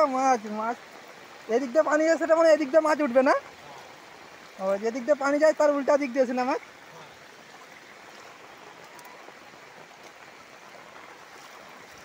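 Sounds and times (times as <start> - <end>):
rain and running floodwater: 0.0 - 12.0.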